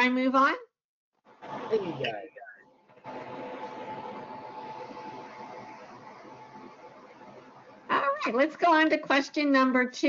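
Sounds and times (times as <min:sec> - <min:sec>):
faint hum: 0:01.3 - 0:10.0.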